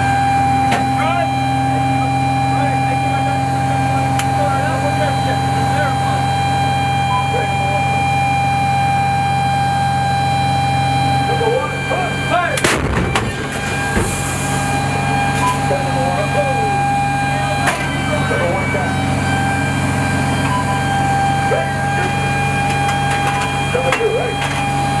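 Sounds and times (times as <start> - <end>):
engine and machinery whine: 0.0 - 25.0
howitzer firing blast: 12.6 - 15.3.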